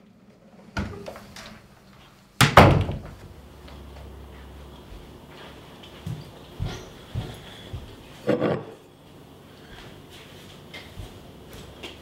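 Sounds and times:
front door slamming: 2.4 - 3.2.

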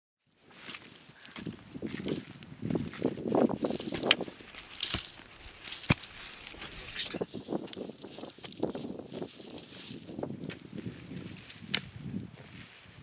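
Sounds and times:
loose earth crunching: 0.3 - 13.0
hand tool scraping into soil: 2.7 - 12.9.

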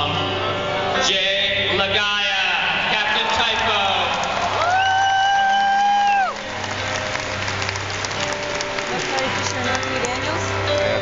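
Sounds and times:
crowd applause and cheering: 2.5 - 11.0.

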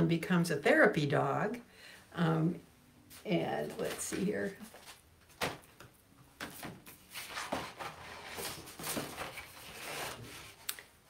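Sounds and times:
paper sheets rustling: 6.4 - 10.7.

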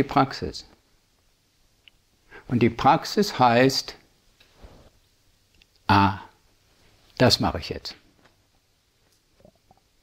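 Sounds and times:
faint soft sounds: 3.9 - 7.3.

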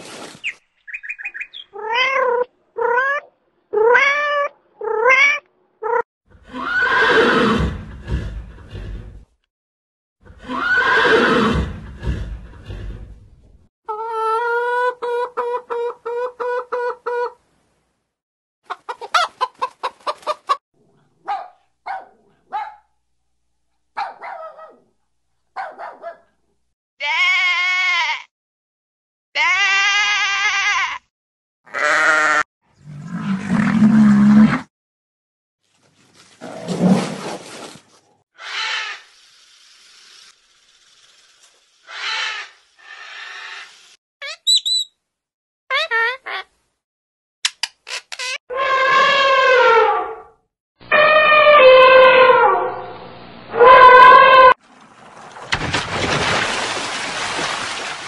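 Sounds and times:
chickens calling: 13.9 - 17.4, 18.6 - 20.6
sheep bleating: 31.7 - 32.4.

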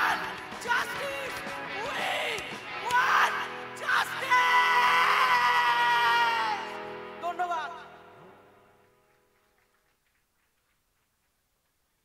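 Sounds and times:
singer shouting: 0.0 - 7.9.

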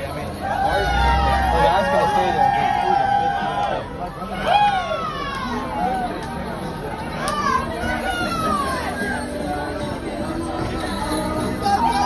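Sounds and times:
crowd chatter: 0.0 - 12.0
children calling out: 7.2 - 9.2.

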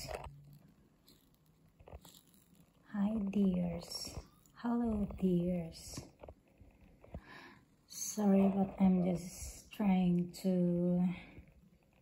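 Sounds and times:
woman's voice: 2.8 - 6.2, 7.9 - 11.4.

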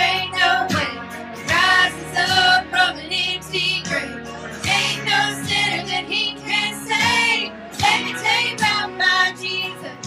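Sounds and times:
women singing worship song: 0.0 - 10.0.

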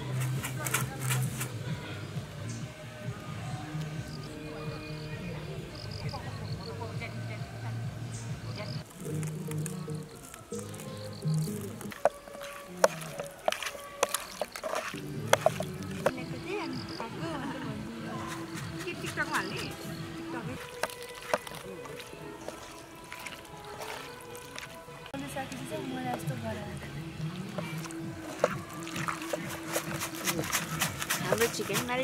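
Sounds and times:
wet squishing of fish by hand: 8.8 - 16.1, 18.3 - 32.0.

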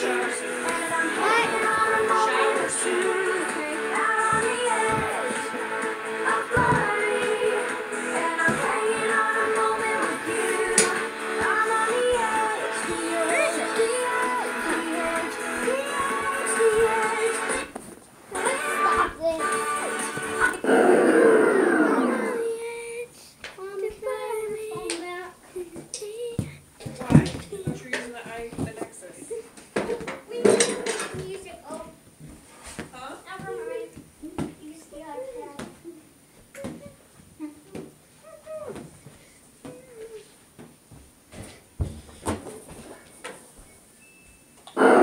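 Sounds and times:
music playing: 0.0 - 17.7, 18.3 - 20.7
young child vocalizing: 20.6 - 22.7.

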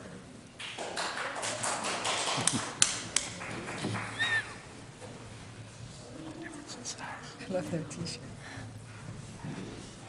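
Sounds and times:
people shuffling and walking: 2.1 - 10.0.

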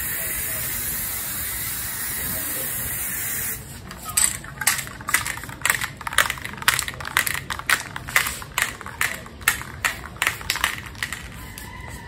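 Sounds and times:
spray can mixing ball rattling: 0.7 - 12.0.

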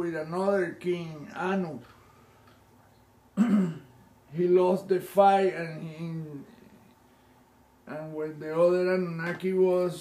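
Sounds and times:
man clearing his throat: 3.4 - 4.0.

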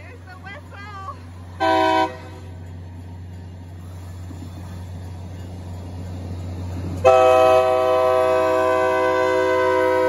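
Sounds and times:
locomotive engine rumble: 0.0 - 10.0
train horn blast: 1.6 - 2.5, 7.0 - 10.0.

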